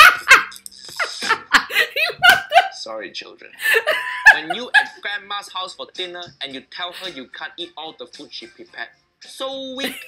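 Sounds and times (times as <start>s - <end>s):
woman laughing hard: 0.0s - 2.8s, 3.6s - 5.0s.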